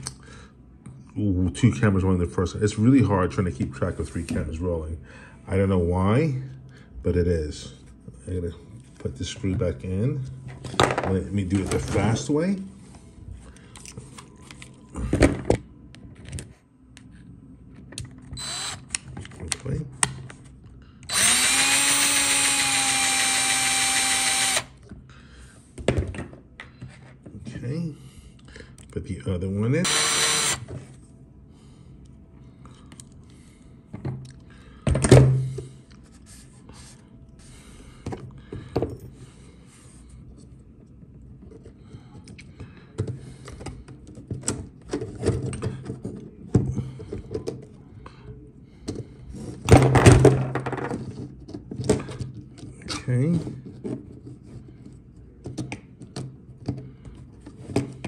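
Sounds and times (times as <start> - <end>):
cordless drill driving screw: 18.4 - 19.0, 21.1 - 24.7, 29.8 - 30.6.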